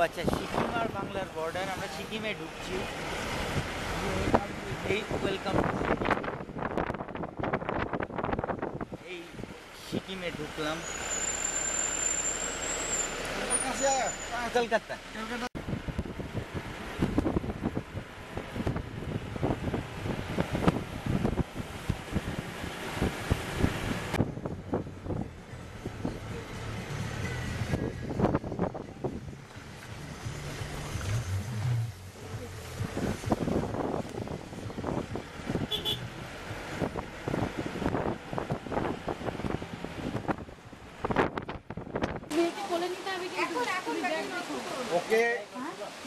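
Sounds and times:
engine and road rumble: 0.0s - 46.0s.

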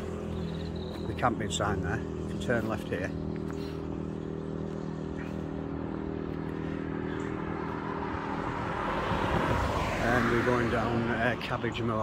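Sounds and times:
car tyre noise approaching: 0.0s - 12.0s
road traffic engine hum: 0.0s - 12.0s.

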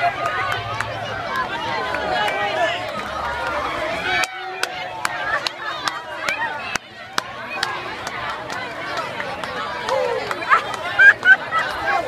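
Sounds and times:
crowd voices: 0.0s - 12.0s.

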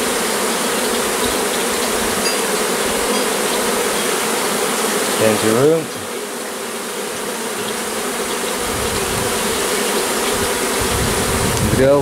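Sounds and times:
bees buzzing: 0.0s - 12.0s.

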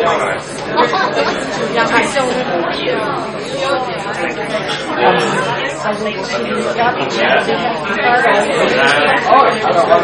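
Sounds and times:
crowd conversation: 0.0s - 10.0s.

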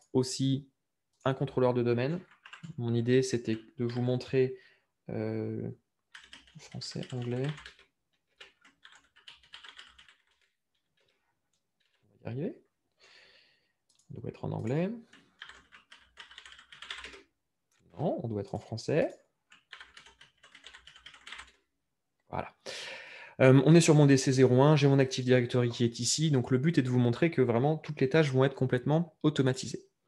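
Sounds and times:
computer keyboard keystrokes: 6.1s - 10.5s, 13.9s - 17.2s, 19.5s - 21.5s.

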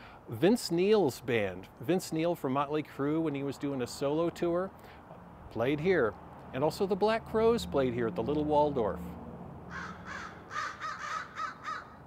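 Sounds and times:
crows cawing: 9.7s - 12.0s.

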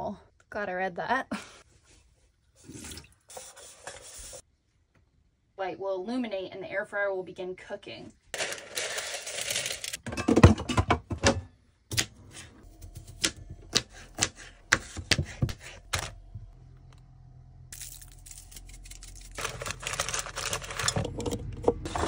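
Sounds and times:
knife chopping on cutting board: 11.9s - 16.1s.

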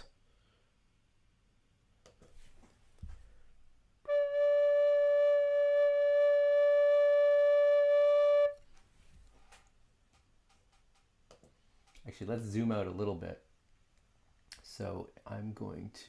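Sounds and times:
recorder playing steady note: 4.1s - 8.6s.

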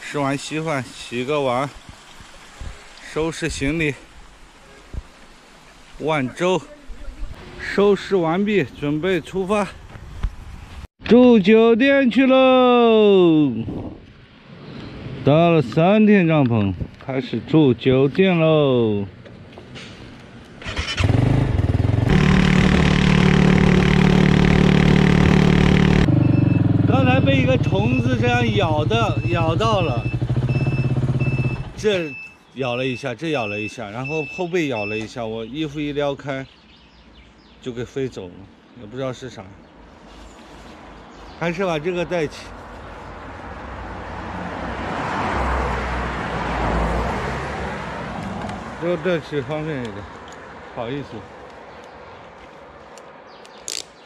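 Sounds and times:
road vehicle passing by: 19.4s - 31.7s, 39.9s - 53.4s
motorcycle engine starting: 20.6s - 28.2s, 29.0s - 31.8s.

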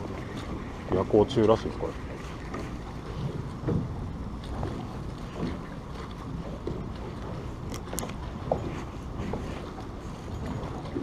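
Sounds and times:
water lapping against boat hull: 0.0s - 11.0s.

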